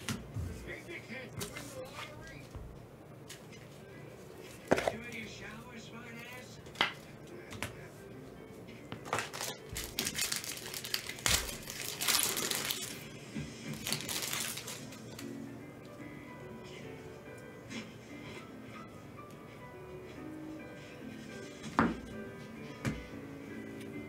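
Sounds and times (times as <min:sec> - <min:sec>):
faint music: 0:00.0 - 0:24.0
foil wrapper tearing and crinkling: 0:09.0 - 0:13.0, 0:13.7 - 0:15.2.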